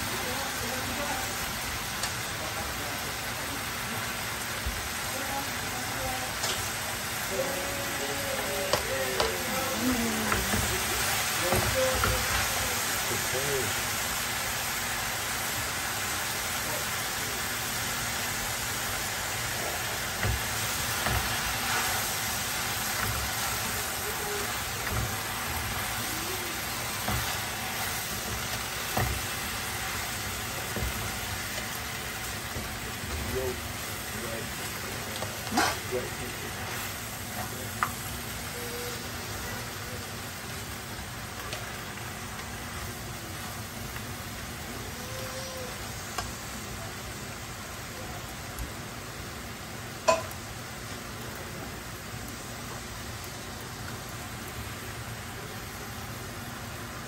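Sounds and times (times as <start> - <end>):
greens sizzling in wok: 0.0 - 57.0.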